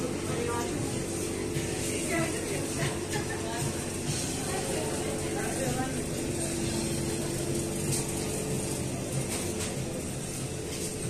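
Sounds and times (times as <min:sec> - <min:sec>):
indoor background hum: 0:00.0 - 0:11.0.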